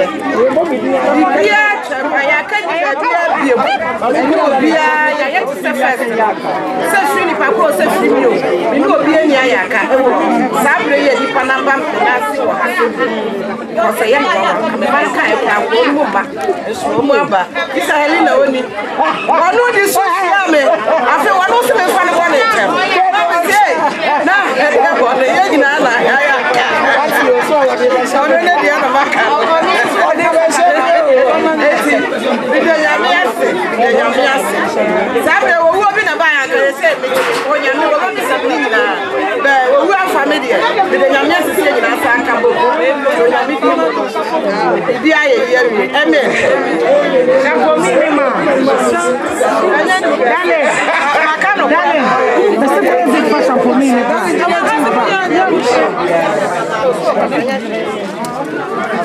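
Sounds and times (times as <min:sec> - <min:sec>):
voices chattering: 0:00.0 - 0:59.0.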